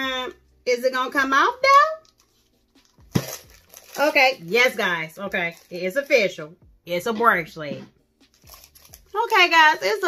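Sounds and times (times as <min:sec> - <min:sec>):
tube lid rustle: 0:01.9 - 0:04.8, 0:08.2 - 0:09.6.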